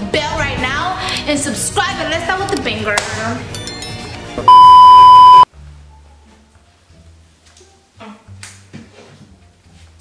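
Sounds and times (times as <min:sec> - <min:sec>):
high-pitched censor beep: 0:04.5 - 0:05.5.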